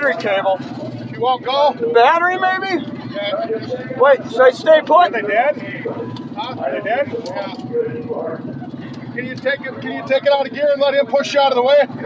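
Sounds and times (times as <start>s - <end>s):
car engine idling: 0.0s - 12.0s
muffled voices: 0.0s - 12.0s.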